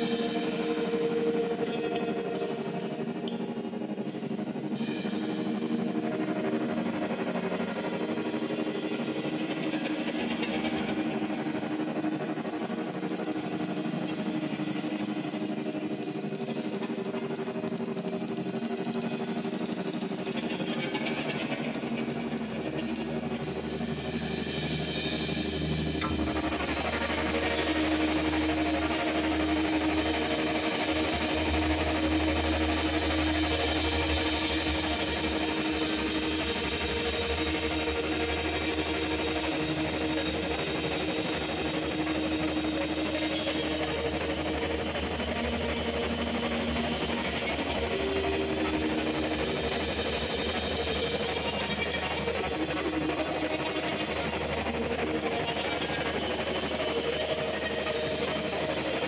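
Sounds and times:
rock band playing: 0.0s - 59.0s.

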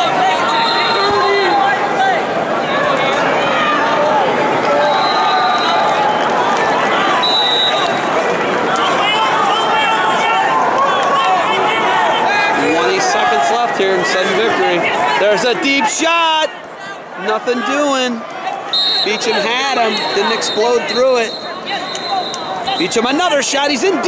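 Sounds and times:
crowd shouting: 0.0s - 24.0s.

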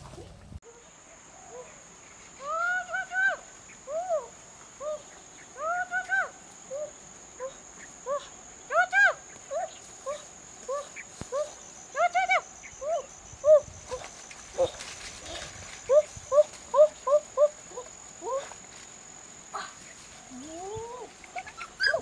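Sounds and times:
high buzz of insects: 0.7s - 22.0s
small dog whining and yelping: 21.4s - 22.0s.

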